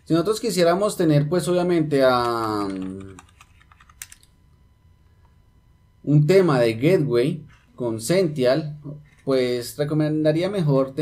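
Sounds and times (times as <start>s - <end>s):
computer keyboard typing: 2.1s - 4.3s.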